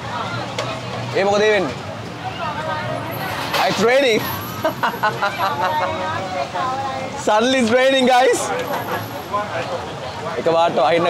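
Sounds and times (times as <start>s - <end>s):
voices: 0.0s - 11.0s
man laughing: 4.6s - 6.0s.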